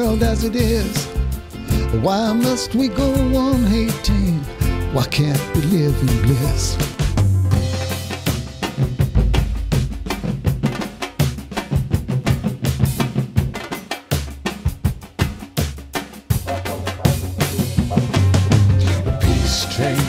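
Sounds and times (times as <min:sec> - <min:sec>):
sustained bass line: 0:00.0 - 0:08.6, 0:16.4 - 0:20.0
surdo drums and drum kit: 0:00.0 - 0:20.0.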